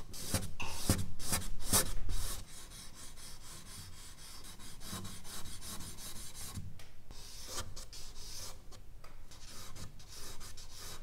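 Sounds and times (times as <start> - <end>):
charcoal scratching on paper: 0.1 - 8.6, 9.3 - 11.0.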